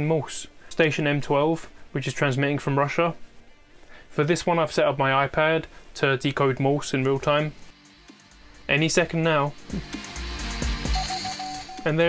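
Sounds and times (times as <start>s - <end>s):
morse code beep tone: 10.8s - 12.0s.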